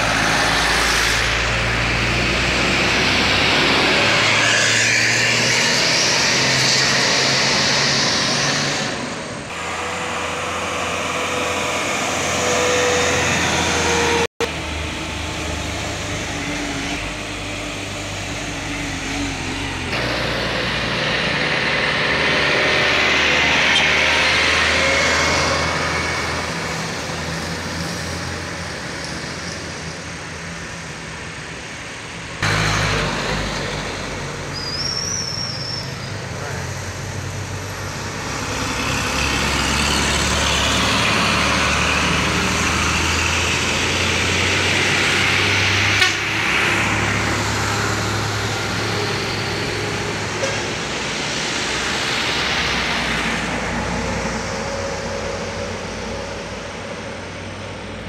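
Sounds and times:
trucks passing at speed: 0.0s - 58.0s
tyre and road noise: 0.0s - 58.0s.

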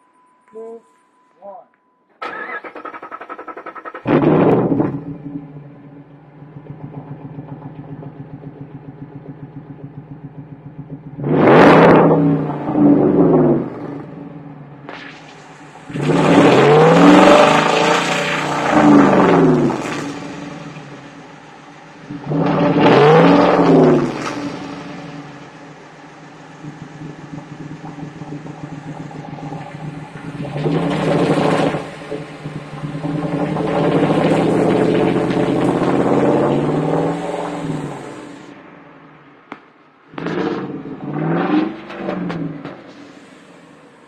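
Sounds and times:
truck engine revving: 2.2s - 38.6s, 40.1s - 44.0s.

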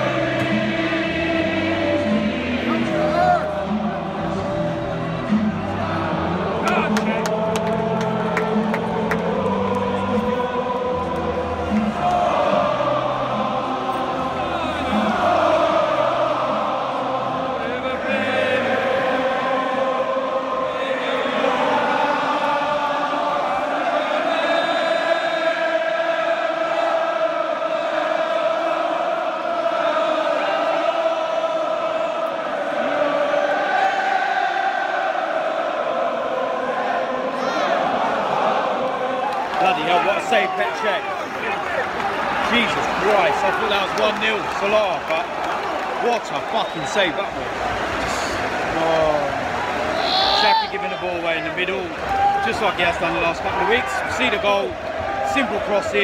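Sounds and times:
stadium crowd chanting: 0.0s - 56.0s.

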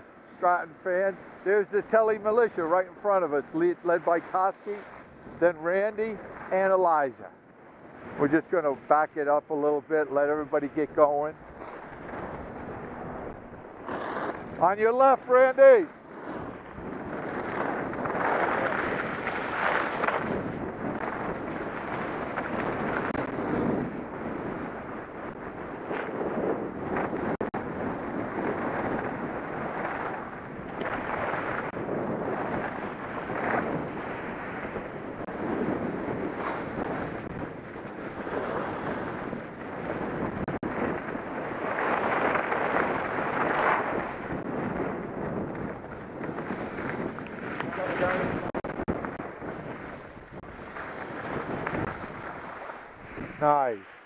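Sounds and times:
wind rushing over microphone: 0.0s - 54.0s
skis scraping over snow: 0.3s - 7.3s, 7.9s - 54.0s.

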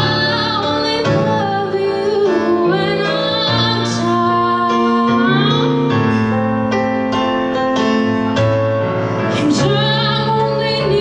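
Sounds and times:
woman singing a slow ballad: 0.0s - 6.3s, 9.3s - 11.0s
keyboard chords: 0.0s - 11.0s.

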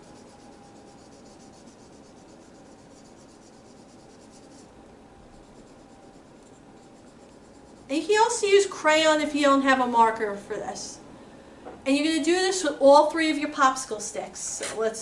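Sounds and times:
marker scratching on wood: 0.0s - 4.7s, 5.3s - 8.1s.

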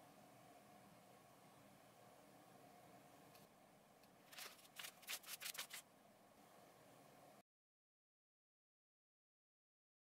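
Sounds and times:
book pages rustling: 4.3s - 5.8s.

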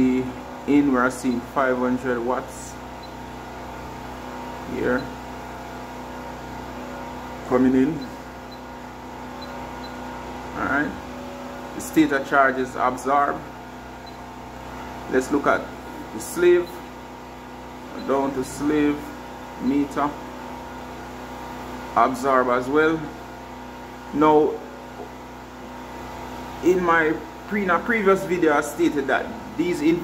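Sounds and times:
petrol generator drone: 0.0s - 30.0s.

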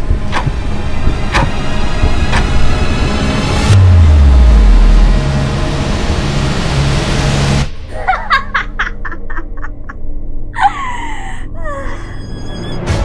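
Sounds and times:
cinematic sound effects with low hum: 0.0s - 7.9s
woman laughing: 7.9s - 12.2s.

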